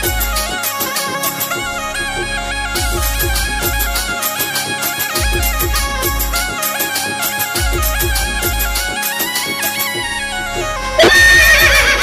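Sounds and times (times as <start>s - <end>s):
devotional song instrumental with drum beat: 0.0s - 1.8s, 2.6s - 10.1s, 11.0s - 12.0s
horse whinny sound effect: 11.0s - 12.0s.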